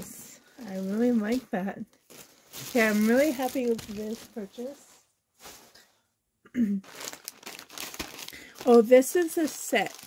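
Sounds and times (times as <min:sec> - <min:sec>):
plastic bag crinkling: 0:00.6 - 0:05.8, 0:06.8 - 0:10.0.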